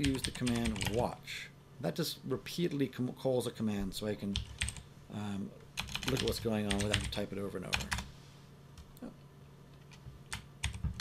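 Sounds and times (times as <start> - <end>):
computer keyboard keystrokes: 0.0 - 1.0, 4.4 - 4.8, 5.8 - 8.0, 9.8 - 11.0.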